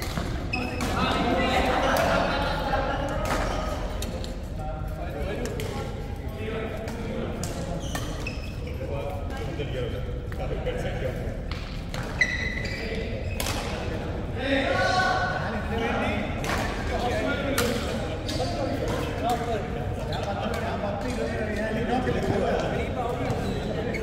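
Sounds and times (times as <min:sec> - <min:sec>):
players' voices: 0:00.0 - 0:24.0.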